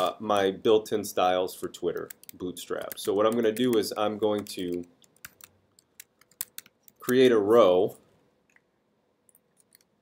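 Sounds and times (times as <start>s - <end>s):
computer keyboard typing: 1.8s - 7.3s, 9.3s - 9.9s.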